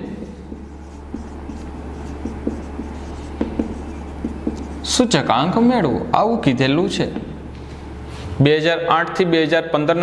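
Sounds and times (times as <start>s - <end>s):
marker pen writing on whiteboard: 0.2s - 5.3s.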